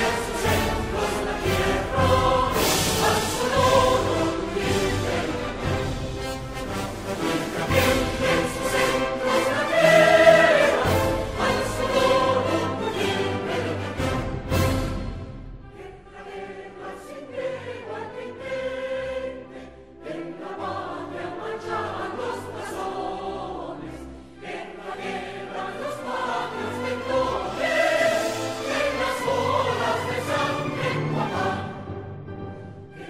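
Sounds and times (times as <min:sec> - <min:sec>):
choir singing: 0:00.0 - 0:33.0.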